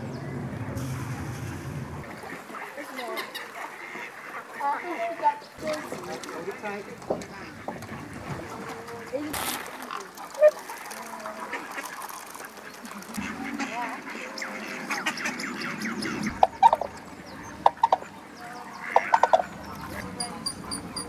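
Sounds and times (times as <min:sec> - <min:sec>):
ducks quacking: 0:00.0 - 0:21.0
geese honking: 0:01.9 - 0:09.3, 0:10.0 - 0:21.0.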